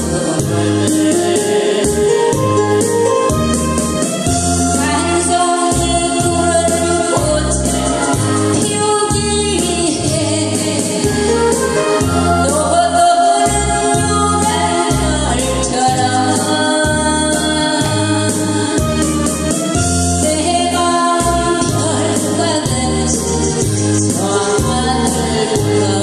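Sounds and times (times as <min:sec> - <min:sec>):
instrumental accompaniment with bass beat: 0:00.0 - 0:26.0
woman singing into microphone: 0:00.0 - 0:26.0.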